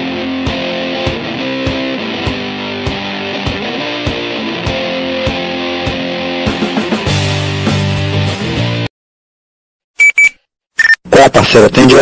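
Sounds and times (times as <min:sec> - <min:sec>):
short electronic beeps: 0:10.0 - 0:11.0.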